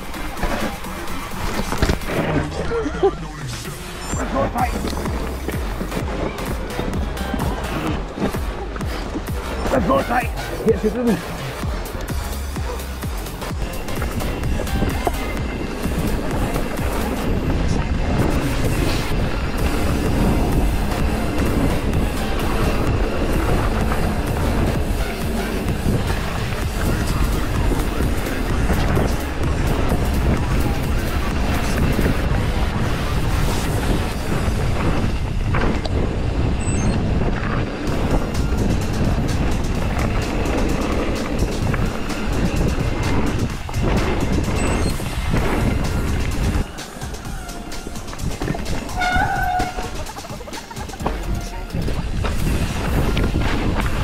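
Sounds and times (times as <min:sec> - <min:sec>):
bike rattling: 0:00.0 - 0:54.0
tyre noise on dirt: 0:00.0 - 0:54.0
wind rushing on microphone: 0:13.0 - 0:54.0.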